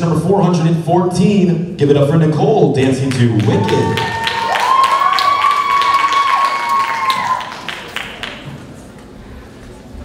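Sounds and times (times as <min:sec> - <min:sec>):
audience applauding: 0:03.1 - 0:08.8
high-pitched whoops: 0:03.5 - 0:07.7.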